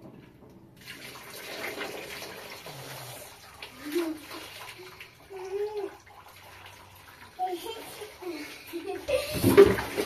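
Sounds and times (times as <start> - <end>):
water splashing into metal basin: 0.0 - 10.0
hands washing: 0.8 - 10.0.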